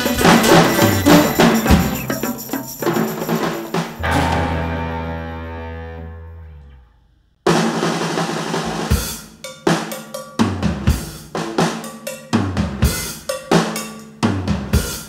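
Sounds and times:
loud drum kit beat: 0.0 - 5.1, 7.5 - 15.0
rock band playing: 0.0 - 6.4.

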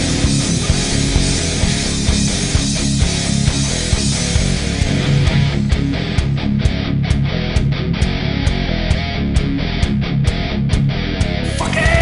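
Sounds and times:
hard rock song: 0.0 - 12.0.

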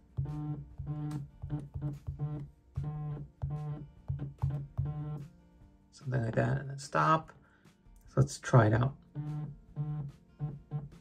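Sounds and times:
phone vibration buzzing: 0.1 - 5.2, 9.0 - 11.0.

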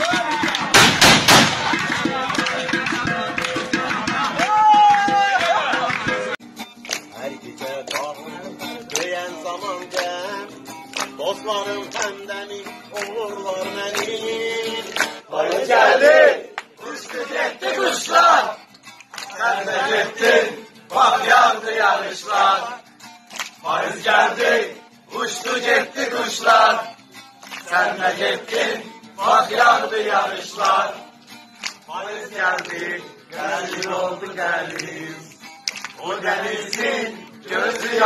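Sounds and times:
men singing and shouting: 0.0 - 6.4, 7.1 - 27.0, 27.6 - 31.1, 31.8 - 38.0
acoustic guitar: 0.0 - 38.0
man singing: 1.6 - 6.4, 7.1 - 10.6, 11.2 - 15.0.

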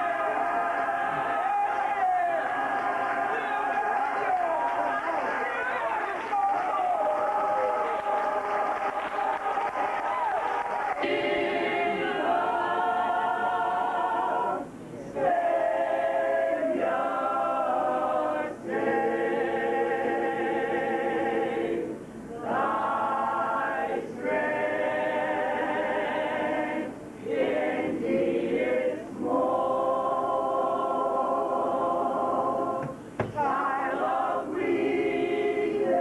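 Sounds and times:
a cappella choir singing: 0.0 - 5.0, 7.0 - 36.0.

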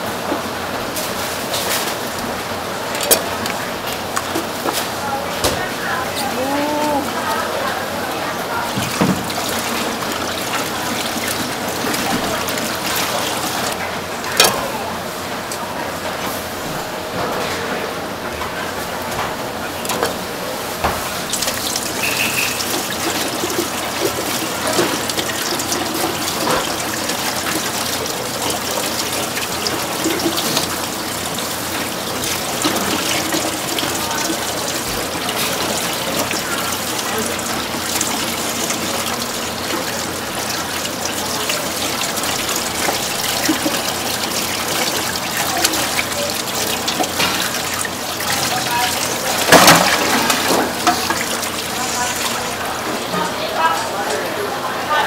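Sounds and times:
tap water running into steel bowl: 7.6 - 14.5, 20.8 - 54.2.

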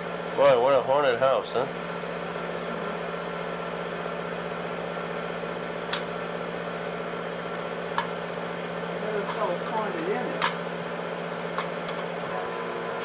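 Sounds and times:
film projector humming: 0.0 - 13.0.

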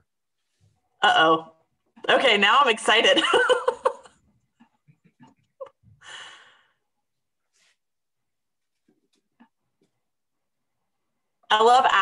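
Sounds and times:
soft breath: 5.9 - 6.9.

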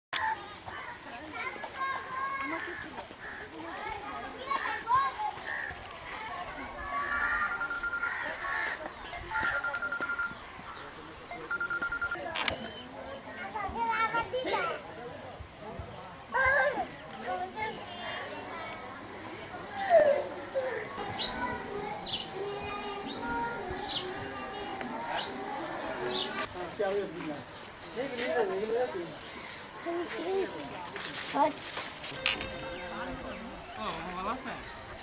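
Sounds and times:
voices calling and chattering: 0.2 - 35.0.

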